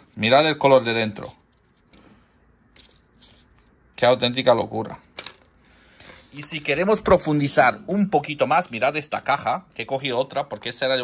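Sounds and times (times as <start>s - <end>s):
booklet pages rustling: 1.2s - 3.8s.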